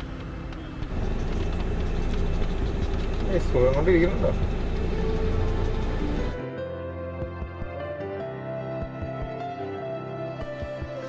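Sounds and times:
moving vehicle rumble: 0.0 - 6.4.

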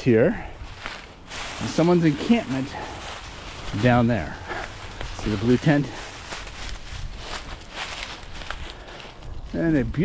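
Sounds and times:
footsteps crunching dry leaves: 0.4 - 10.0.

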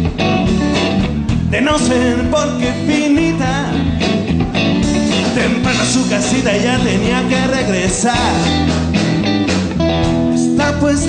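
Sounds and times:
blues-rock band playing: 0.0 - 11.0
guitar bending notes: 0.0 - 11.0.

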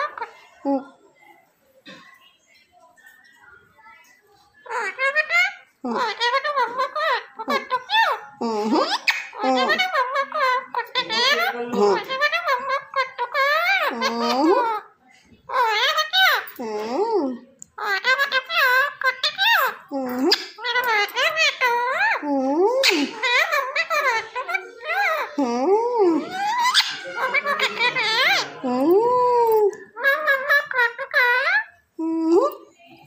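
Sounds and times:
parakeet babbling: 4.6 - 32.9.

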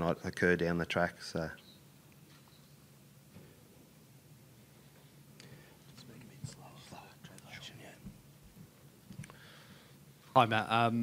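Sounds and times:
faint whispered speech: 5.9 - 8.1.

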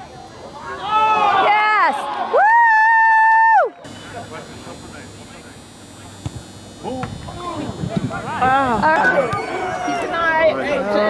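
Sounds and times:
person shouting woo: 2.3 - 3.7
crowd murmur: 3.6 - 11.0.

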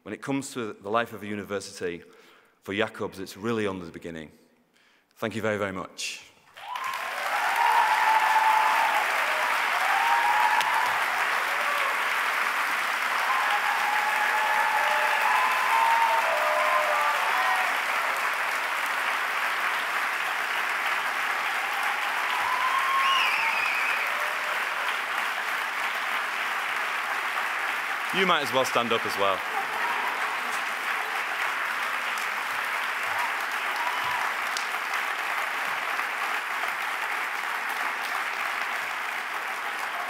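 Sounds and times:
large audience applauding: 6.5 - 40.0.

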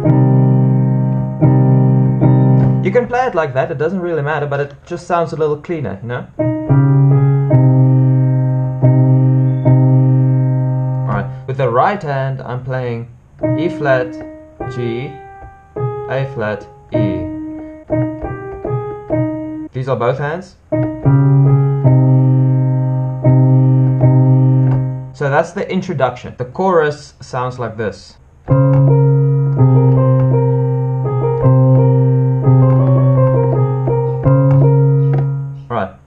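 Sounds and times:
piano chords ringing: 0.0 - 4.1, 6.3 - 12.6, 13.3 - 25.4, 28.4 - 35.8
piano bass notes: 0.0 - 5.5, 6.1 - 25.5, 28.3 - 35.8.

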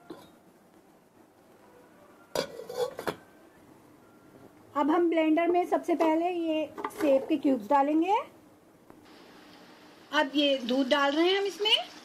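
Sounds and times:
metal lid clanking: 2.3 - 3.2
metal lid scraping and ringing: 2.3 - 3.2.

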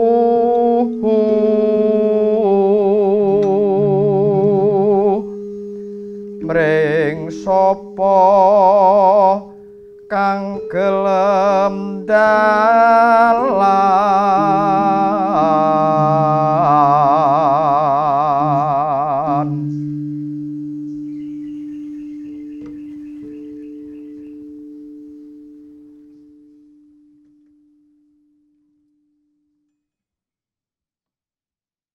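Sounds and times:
person singing melismatic song: 0.0 - 26.9
steady ringing tone: 3.7 - 28.6.

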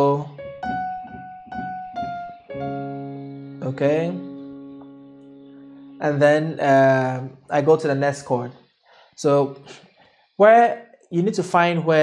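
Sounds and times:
piano chord ringing: 0.0 - 8.2.

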